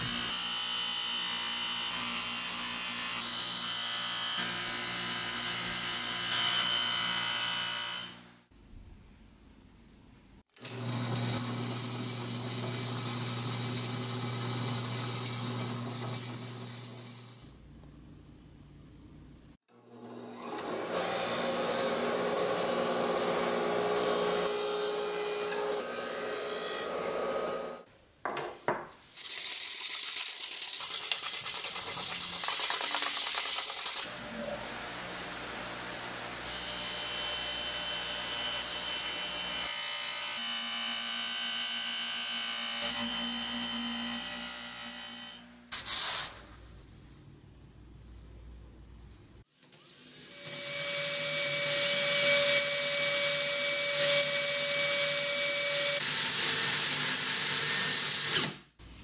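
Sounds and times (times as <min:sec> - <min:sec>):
power tool running: 0:10.6 - 0:17.5, 0:29.2 - 0:34.2
machine running: 0:29.2 - 0:34.1
sandpaper rubbing metal: 0:29.2 - 0:34.1.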